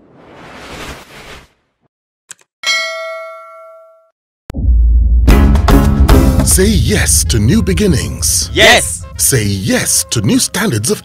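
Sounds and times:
notification bell ding: 2.6 - 4.1.

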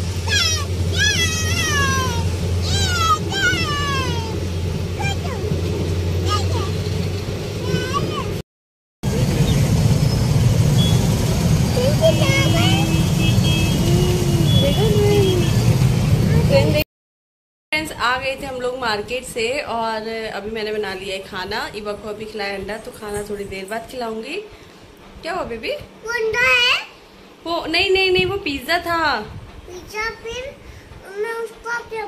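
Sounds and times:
train rumbling past: 0.0 - 8.4, 9.0 - 16.8, 17.8 - 32.0
child squealing: 0.2 - 4.4, 5.0 - 5.5, 7.6 - 8.3.

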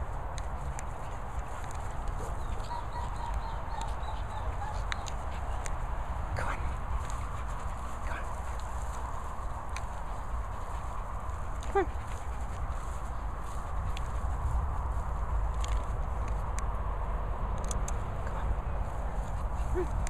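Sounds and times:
wind rumble on microphone: 0.0 - 20.0
dog sounds: 1.7 - 14.1, 19.2 - 20.0.

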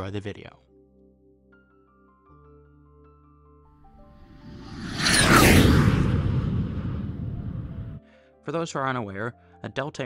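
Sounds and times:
whoosh with falling whine: 4.2 - 8.0.

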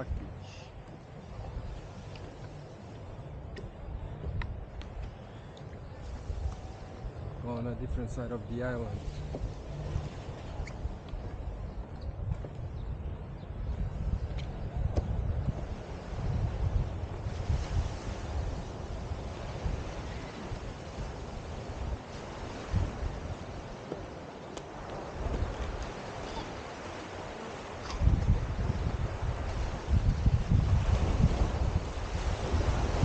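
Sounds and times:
wind buffeting microphone: 0.0 - 33.0.

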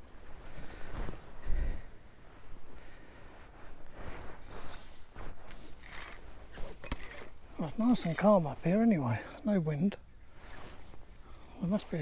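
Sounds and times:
rustling and soft thumps: 0.0 - 8.9.

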